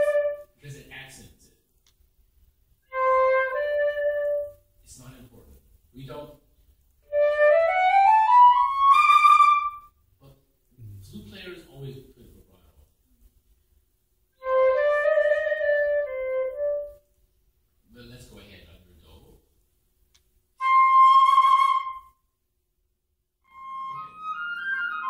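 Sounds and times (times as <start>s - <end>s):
flute playing a high note: 0.0s - 0.5s, 2.9s - 4.6s, 20.6s - 22.2s, 23.5s - 25.0s.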